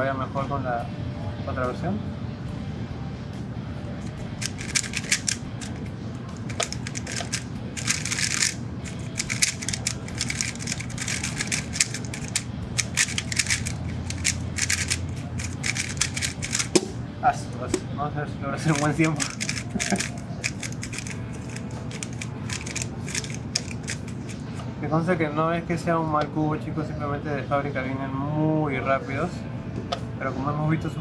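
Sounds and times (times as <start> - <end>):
plastic puzzle cube clicking: 4.4 - 5.8, 6.4 - 16.7, 18.7 - 24.4.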